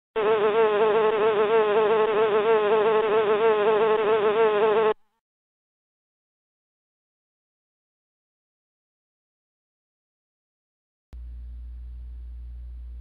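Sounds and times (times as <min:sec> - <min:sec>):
cartoon bee buzzing: 0:00.2 - 0:05.0.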